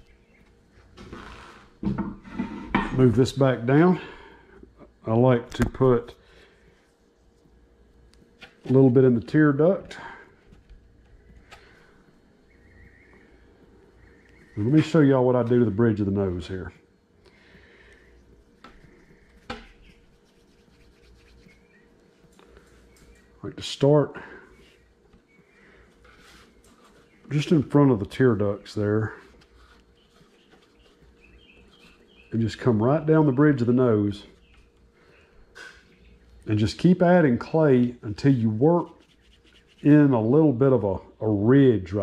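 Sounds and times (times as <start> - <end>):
low steady hum: 0.0 - 42.0
small bird chirping: 12.4 - 15.0, 18.8 - 23.4, 29.6 - 32.4
faint clicks and rustles: 24.6 - 27.4.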